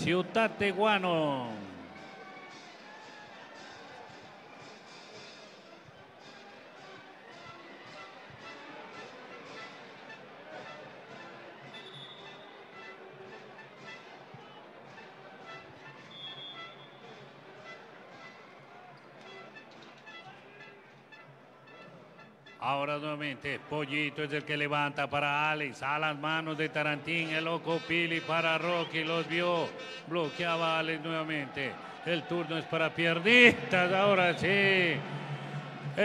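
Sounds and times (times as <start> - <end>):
crowd voices: 0.0 - 16.1, 26.3 - 36.0
faint music over sound system: 0.0 - 36.0.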